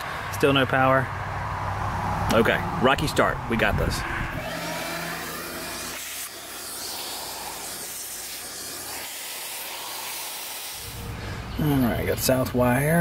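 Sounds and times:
wet dry vacuum running: 0:04.4 - 0:11.3.

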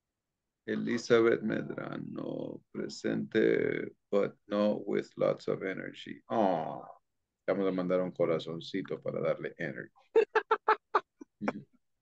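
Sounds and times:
person laughing: 0:00.7 - 0:01.6, 0:10.2 - 0:11.6.

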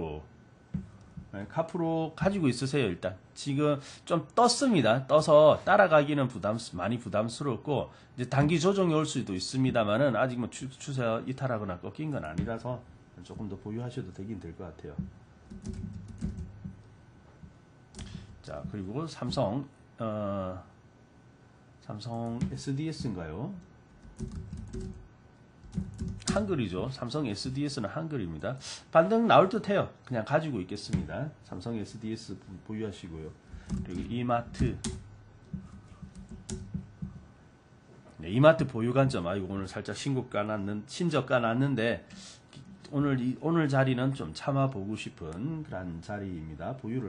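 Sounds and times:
keyboard typing: 0:15.0 - 0:16.9, 0:24.0 - 0:25.0, 0:25.6 - 0:26.5, 0:33.6 - 0:37.2.

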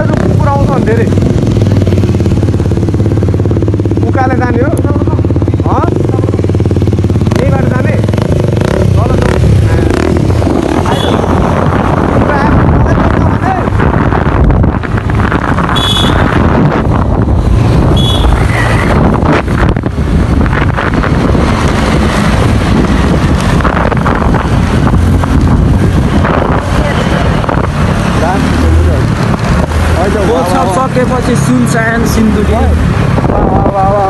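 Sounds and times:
engine and traffic noise: 0:00.0 - 0:34.0
wind buffeting microphone: 0:05.0 - 0:30.3, 0:32.6 - 0:34.0.

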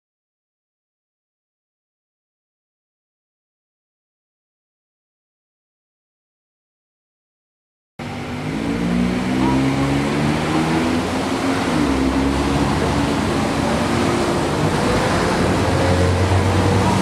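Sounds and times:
road traffic passing slowly: 0:08.0 - 0:17.0.

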